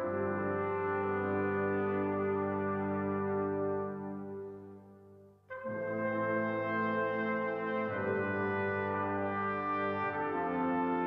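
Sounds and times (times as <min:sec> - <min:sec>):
brass ensemble playing held chords: 0:00.0 - 0:11.0.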